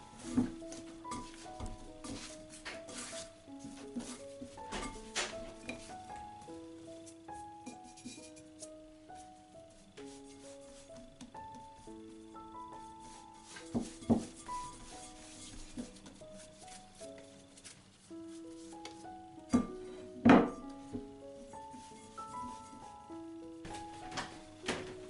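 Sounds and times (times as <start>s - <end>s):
background music with held notes: 0.0s - 25.0s
dough being kneaded by hand: 0.0s - 25.0s.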